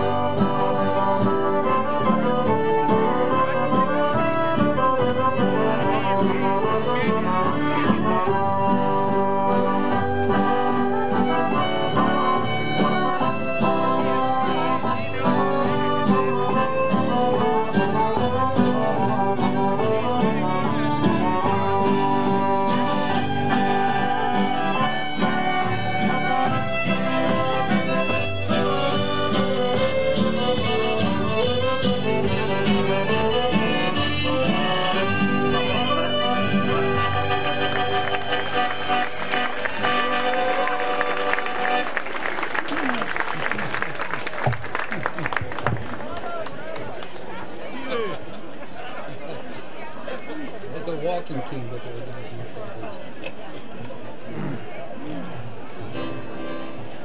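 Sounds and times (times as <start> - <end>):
folk dance music with fiddle: 0.0 - 43.3, 55.7 - 57.0.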